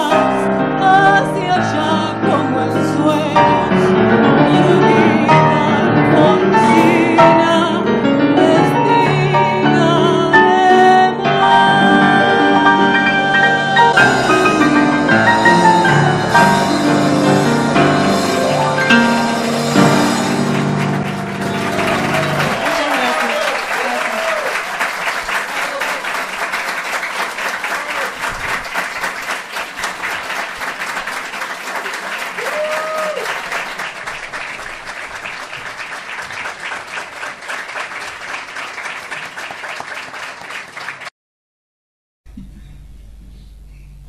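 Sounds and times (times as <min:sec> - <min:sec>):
piano chord: 0:00.0 - 0:22.8
audience clapping: 0:18.1 - 0:41.1
people cheering: 0:20.6 - 0:41.0.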